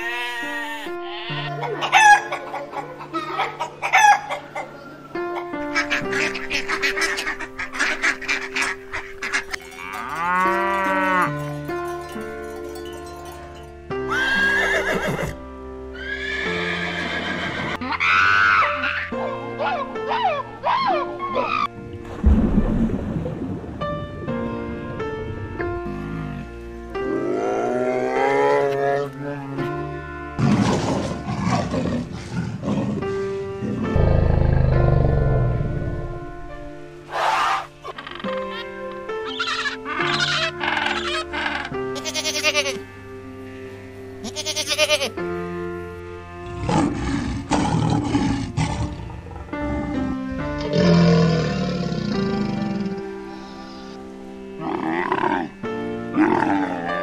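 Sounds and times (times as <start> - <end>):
background music: 0.0 - 57.0
animal calls and low roars: 54.6 - 55.6.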